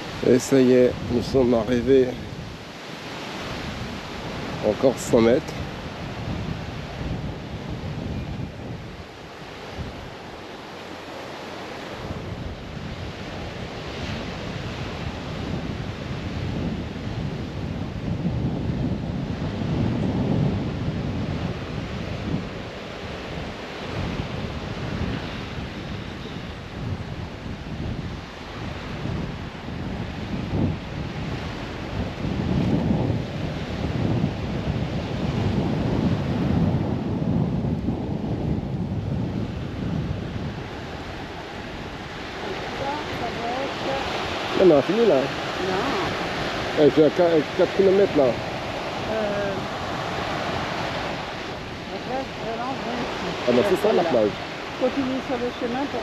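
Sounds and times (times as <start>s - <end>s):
surf breaking on beach: 0.0s - 56.0s
wind buffeting microphone: 0.0s - 56.0s.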